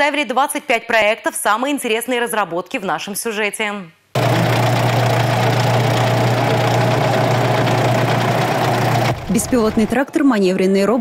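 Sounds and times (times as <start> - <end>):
tractor diesel engine idling: 4.2 - 10.0.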